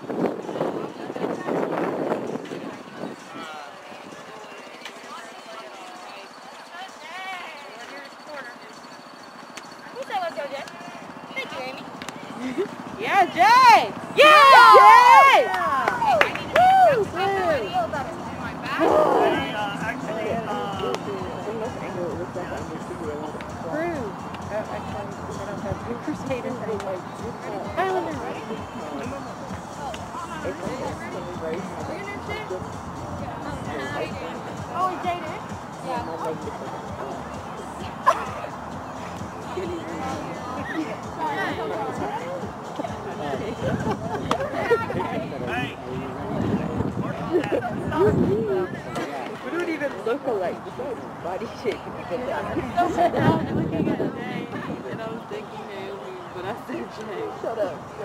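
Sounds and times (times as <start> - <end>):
faint background chatter: 0.0 - 58.0.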